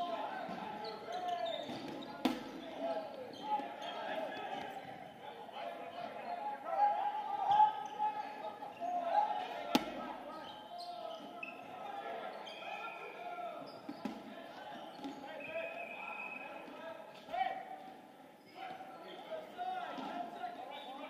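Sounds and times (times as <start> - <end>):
voices calling out and chattering: 0.0 - 21.0.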